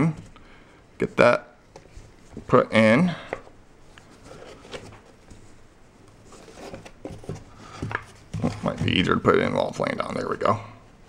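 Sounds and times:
soft plastic rubbing: 0:03.3 - 0:09.9.

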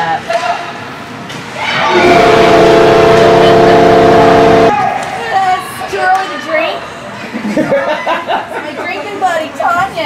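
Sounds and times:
crowd cheering: 0:01.6 - 0:05.6
horn long steady note: 0:01.9 - 0:04.8.

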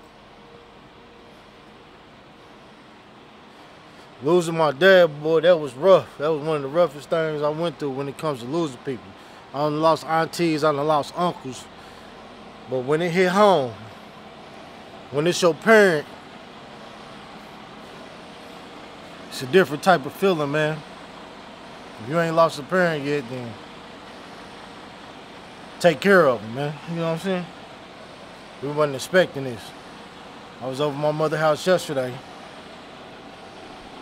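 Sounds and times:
vehicle hum and hiss: 0:00.0 - 0:34.0.

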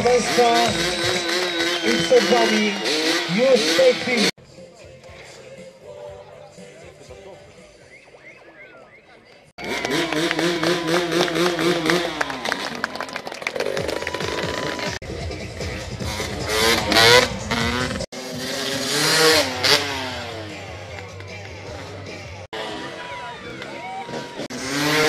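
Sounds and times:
dirt bike engine revving: 0:00.0 - 0:04.4, 0:09.6 - 0:13.0, 0:13.6 - 0:25.0
music playing: 0:00.0 - 0:08.2, 0:14.2 - 0:24.3.

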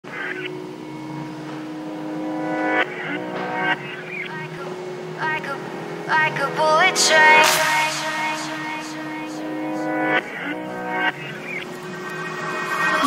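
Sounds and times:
electronic pop song: 0:02.7 - 0:13.0.

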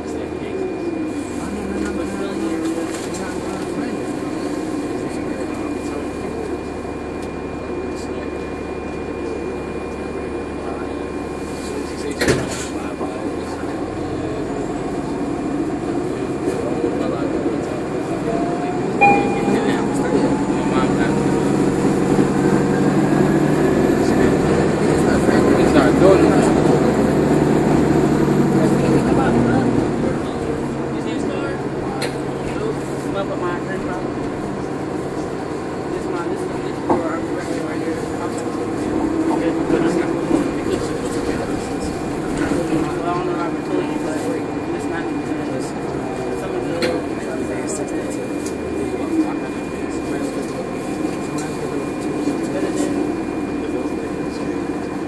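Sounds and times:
bus engine drone: 0:00.0 - 0:55.0
bus motor whine: 0:00.0 - 0:55.0.

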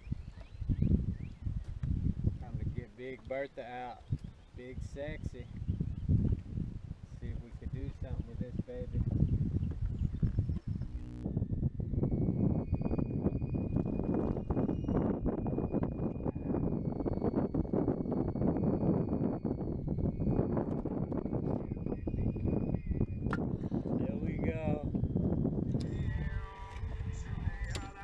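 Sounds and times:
wind rumble on microphone: 0:00.0 - 0:28.0.

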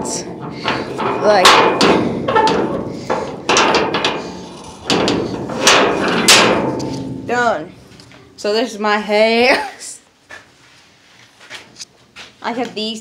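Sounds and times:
loud bangs on steel sheet: 0:00.2 - 0:07.8.

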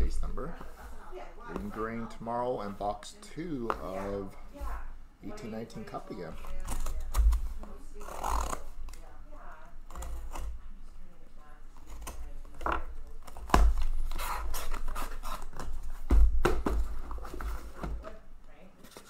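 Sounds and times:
packing tape tearing: 0:06.4 - 0:09.0, 0:09.9 - 0:10.6, 0:11.8 - 0:17.5.

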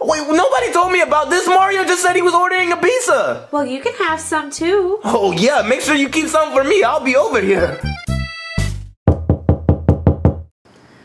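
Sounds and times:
rapid knocking on a door: 0:09.1 - 0:10.5.

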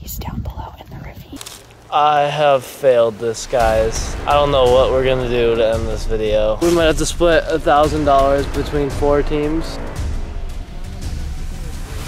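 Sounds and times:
rough crackling rustle: 0:01.3 - 0:07.8.

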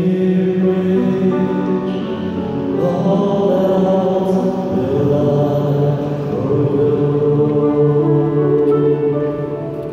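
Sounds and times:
man singing lead: 0:00.0 - 0:09.4
choir singing a slow hymn: 0:00.0 - 0:09.9.

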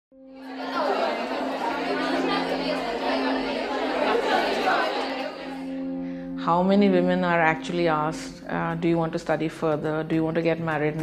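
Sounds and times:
overlapping voices chattering: 0:00.4 - 0:05.9
low musical drone: 0:00.4 - 0:07.1.

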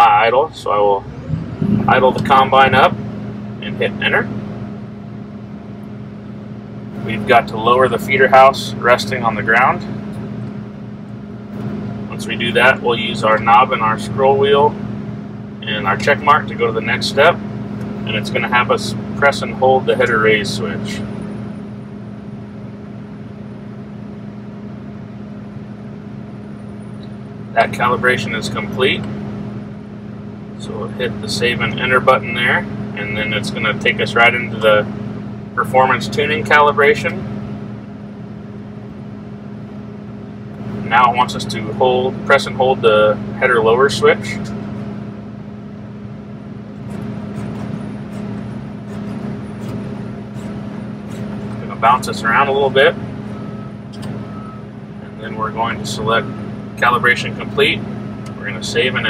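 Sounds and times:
diesel engine running at high idle: 0:00.0 - 0:59.0.

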